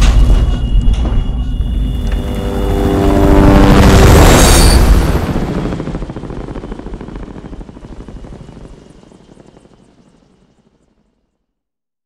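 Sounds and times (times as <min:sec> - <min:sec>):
helicopter rotor chop: 0:01.8 - 0:11.2.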